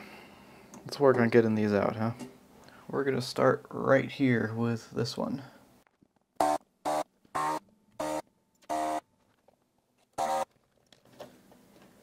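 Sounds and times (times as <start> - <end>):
desoldering pump buzzing: 10.2 - 10.5.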